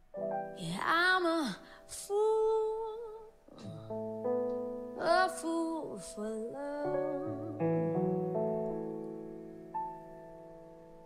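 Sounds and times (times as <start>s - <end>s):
sustained keyboard chords: 3.6s - 11.0s.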